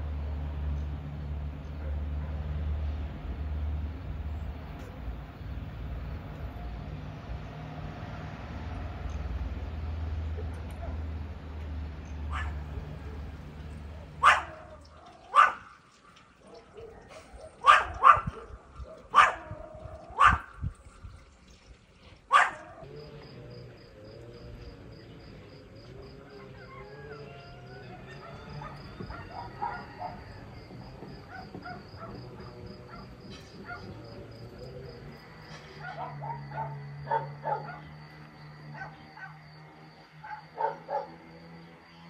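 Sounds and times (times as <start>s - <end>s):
dog barking: 12.3s - 12.7s, 14.2s - 15.8s, 16.4s - 20.5s, 22.3s - 22.9s, 27.9s - 30.4s, 31.2s - 34.0s, 35.8s - 38.0s, 38.7s - 39.4s, 40.2s - 41.2s.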